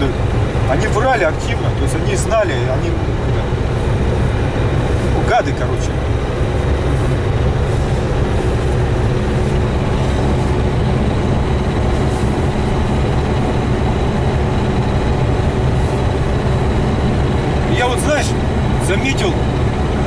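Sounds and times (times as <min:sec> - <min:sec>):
diesel engine droning: 0:00.0 - 0:20.0
road noise: 0:00.0 - 0:20.0.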